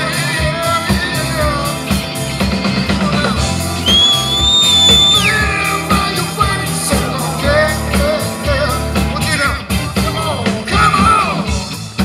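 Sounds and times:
live rock band: 0.0 - 12.0
shrill high whistle: 3.8 - 5.4.

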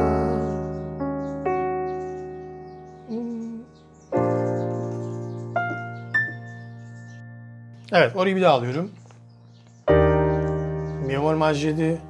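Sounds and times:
piano playing jazz chords: 0.0 - 12.0.

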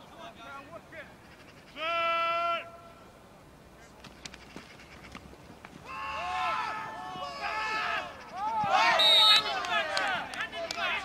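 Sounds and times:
man shouting signal call: 8.7 - 9.7.

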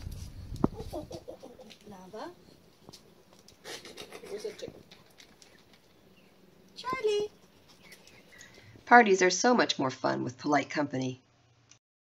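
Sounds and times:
chicken clucking: 0.6 - 1.8.

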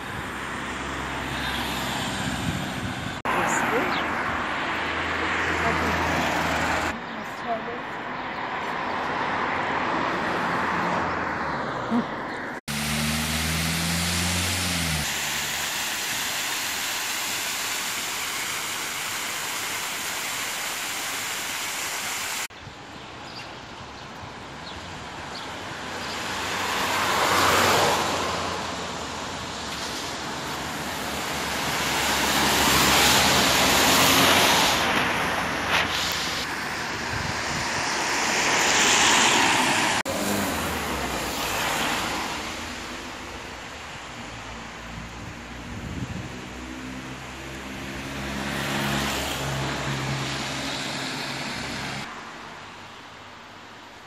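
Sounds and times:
vehicles passing: 0.0 - 54.0
fountain water cascading: 12.7 - 22.5, 28.8 - 36.6.

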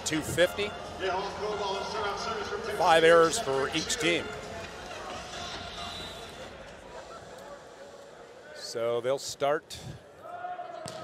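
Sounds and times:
male commentator speaking: 0.0 - 4.4, 8.5 - 10.0.

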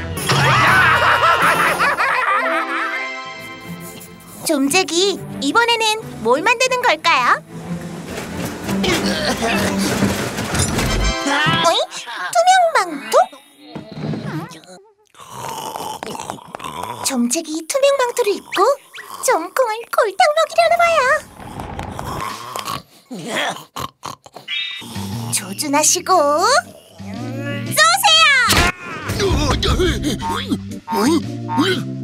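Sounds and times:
background music: 0.0 - 14.1, 24.8 - 32.0
cartoon zombie snoring and groaning: 12.9 - 20.2, 20.9 - 27.7.

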